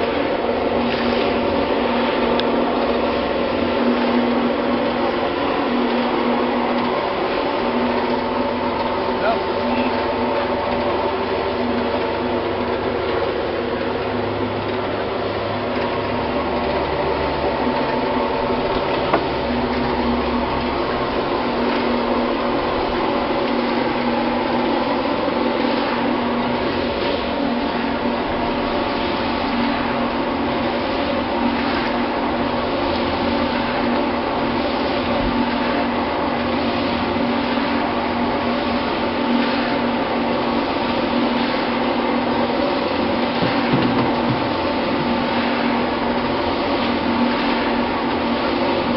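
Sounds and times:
mixer motor hum: 0:00.0 - 0:48.9
paddles churning gritty mix: 0:00.0 - 0:48.9.

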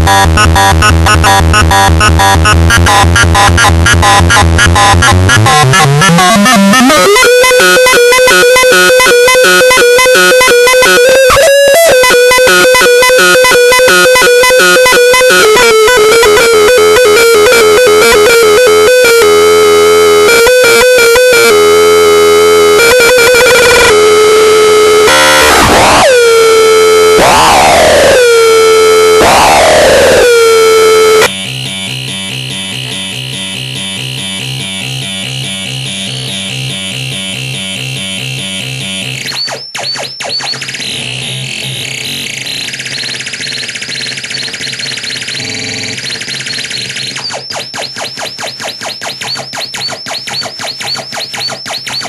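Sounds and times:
harsh square-wave synth buzz: 0:00.0 - 0:52.0
low synth buzz: 0:15.3 - 0:39.3.

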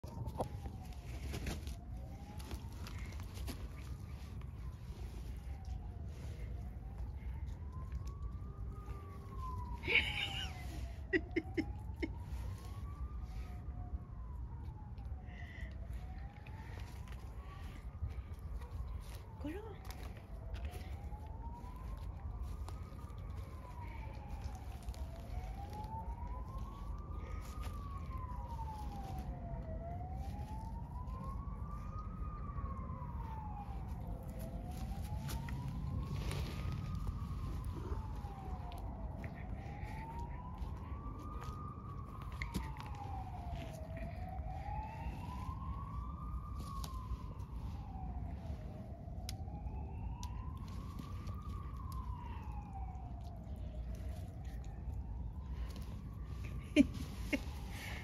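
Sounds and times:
emergency siren wailing: 0:00.0 - 0:58.0
steady low rumble: 0:00.0 - 0:58.0.

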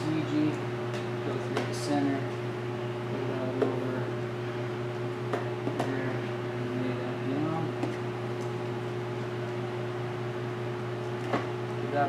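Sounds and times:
electric fan motor hum: 0:00.0 - 0:12.0.

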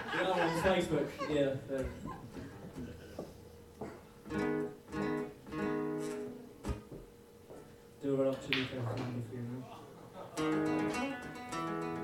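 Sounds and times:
acoustic guitar strumming chords: 0:04.2 - 0:06.9, 0:10.4 - 0:12.0.

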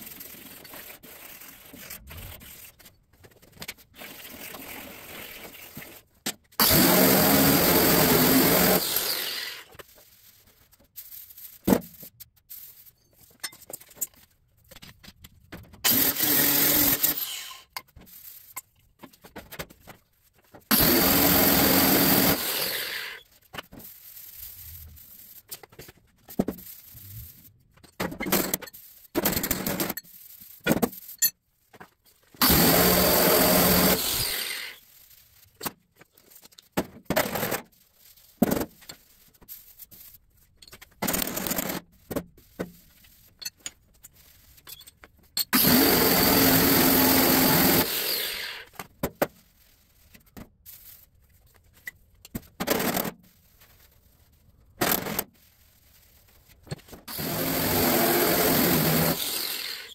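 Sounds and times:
angle grinder on sheet steel: 0:06.6 - 0:09.7, 0:15.9 - 0:17.7, 0:20.7 - 0:23.2, 0:32.4 - 0:34.8, 0:45.6 - 0:48.7, 0:57.1 - 0:59.9.

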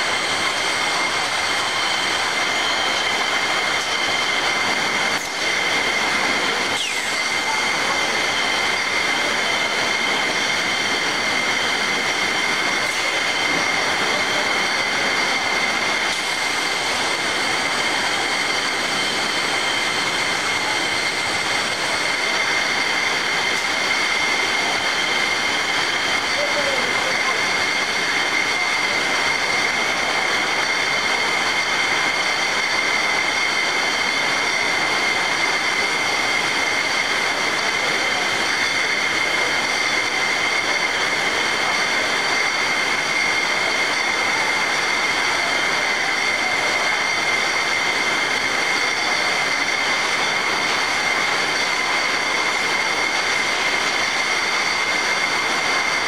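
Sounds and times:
constant high whine: 0:00.0 - 0:56.0.

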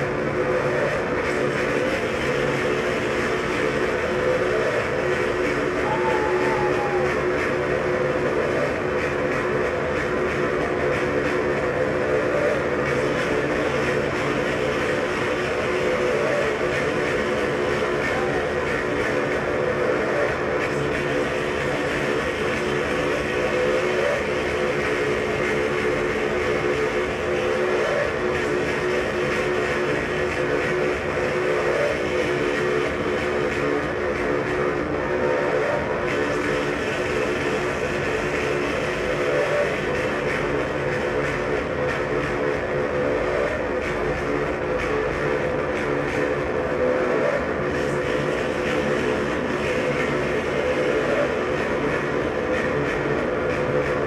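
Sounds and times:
distorted noise music drone: 0:00.0 - 0:54.0.

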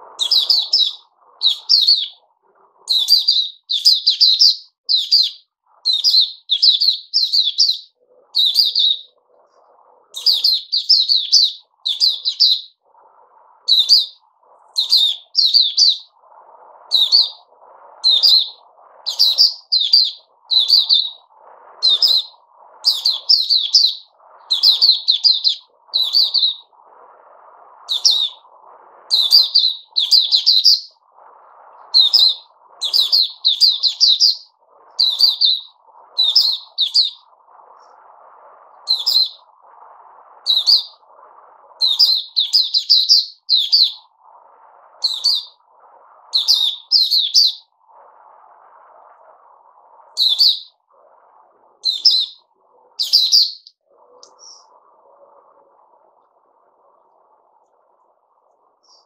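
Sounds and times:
bird chirping: 0:00.2 - 0:09.2, 0:10.1 - 0:12.8, 0:13.7 - 0:16.2, 0:16.9 - 0:26.7, 0:27.9 - 0:28.5, 0:29.1 - 0:31.0, 0:31.8 - 0:38.0, 0:38.8 - 0:39.5, 0:40.4 - 0:41.0, 0:41.8 - 0:44.1, 0:45.0 - 0:45.6, 0:46.3 - 0:47.7, 0:50.2 - 0:50.8, 0:51.8 - 0:54.7.

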